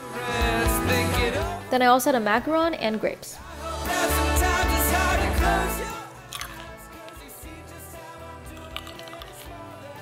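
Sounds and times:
quiet background music: 0.0s - 10.0s
grape being bitten and chewed: 6.3s - 7.2s, 8.5s - 9.6s.

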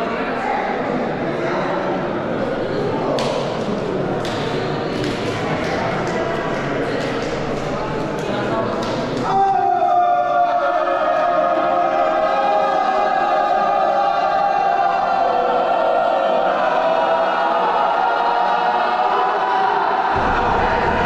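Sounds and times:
group chanting a long cry: 9.2s - 21.0s.

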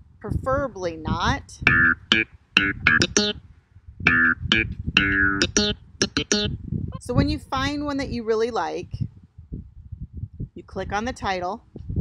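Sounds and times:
plucked bass loop: 1.6s - 3.4s, 4.1s - 7.2s.

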